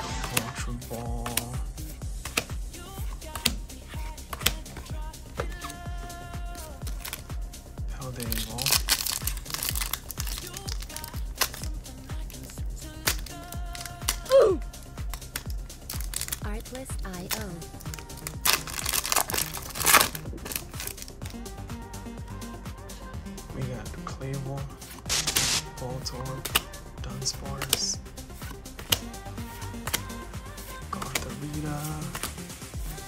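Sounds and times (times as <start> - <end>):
background music with steady beat: 0.0 - 33.0
foil wrapper crinkling and tearing: 6.6 - 7.3, 8.0 - 14.3, 15.1 - 21.3, 25.1 - 25.8.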